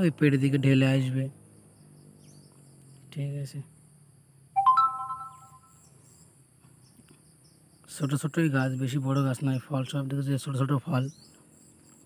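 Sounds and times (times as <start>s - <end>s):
bright chime ring: 4.6s - 5.7s.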